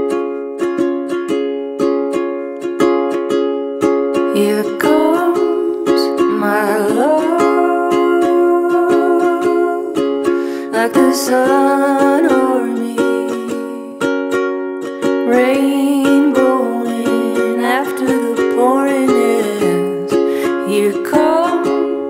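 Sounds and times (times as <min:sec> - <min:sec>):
strummed plucked string instrument: 0:00.0 - 0:22.0
person singing: 0:04.2 - 0:14.1, 0:15.1 - 0:22.0.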